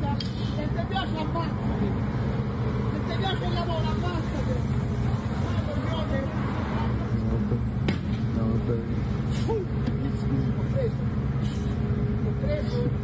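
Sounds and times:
bus engine idling: 0.0s - 13.0s.

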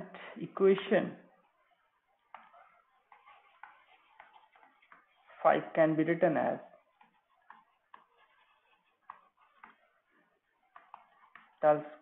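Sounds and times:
stylus tapping on tablet: 2.2s - 5.1s, 7.0s - 9.9s, 10.6s - 12.0s.

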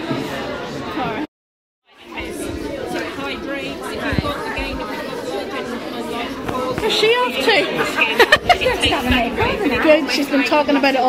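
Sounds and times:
indistinct chatter of voices: 0.0s - 1.3s, 1.9s - 11.0s.

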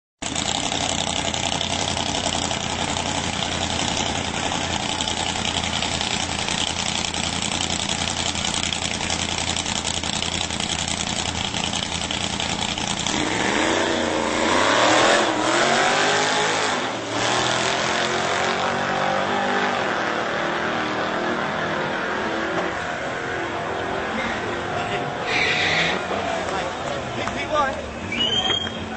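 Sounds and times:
race car engines revving: 0.2s - 28.9s.

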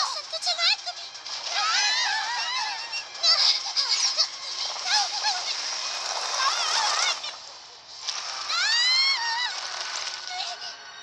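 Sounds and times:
cartoon voices shrieking: 1.5s - 4.1s, 6.3s - 7.4s, 8.4s - 10.4s.

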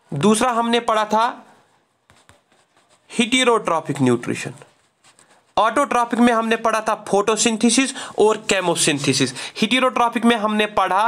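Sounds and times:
handwriting on touchscreen: 2.0s - 6.6s.

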